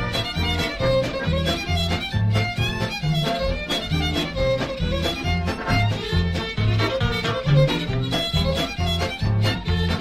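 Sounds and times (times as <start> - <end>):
bouncing bass beat: 0.0 - 10.0
fiddle playing quick melody: 0.0 - 10.0.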